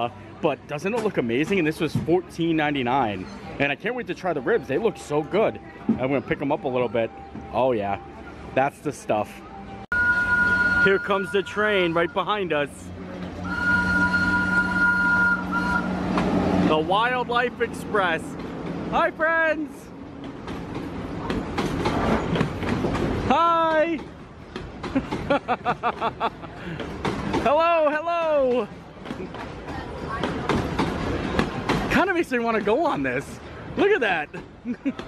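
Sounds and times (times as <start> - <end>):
low hum of approaching train: 6.5 - 23.3
steam locomotive whistle blast: 9.9 - 12.2, 13.4 - 16.1
wheels clacking on track: 13.0 - 33.3.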